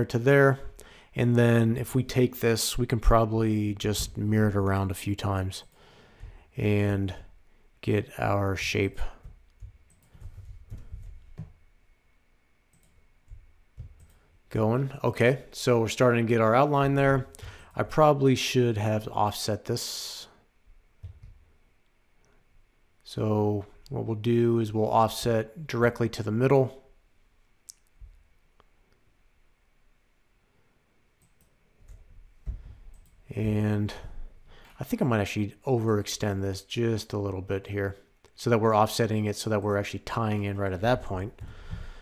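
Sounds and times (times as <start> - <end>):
room hiss: 0.0 - 42.0
computer mouse clicking: 9.2 - 11.6, 12.7 - 14.2.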